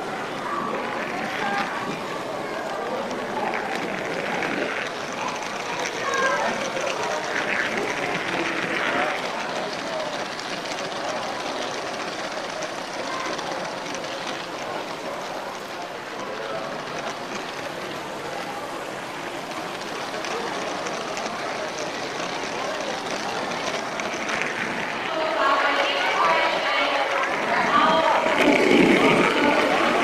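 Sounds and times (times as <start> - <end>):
people's voices: 0.0 - 30.0
toy train running on track: 0.0 - 30.0.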